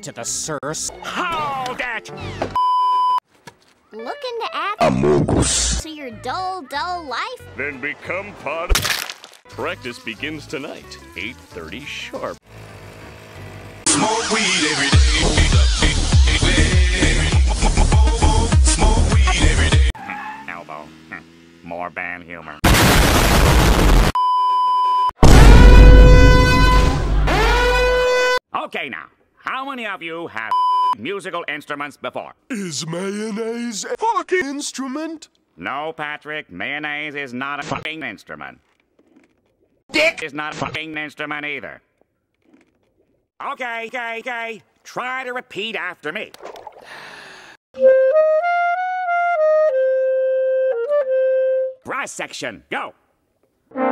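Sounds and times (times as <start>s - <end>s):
high censor bleep: 2.6s - 3.2s, 24.2s - 25.1s, 30.5s - 31.0s
harsh static burst: 22.6s - 24.2s
solo clarinet: 47.8s - 51.8s.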